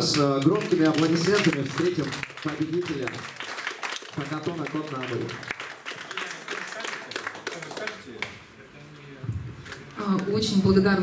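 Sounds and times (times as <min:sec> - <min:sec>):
audience clapping: 0:00.0 - 0:08.5.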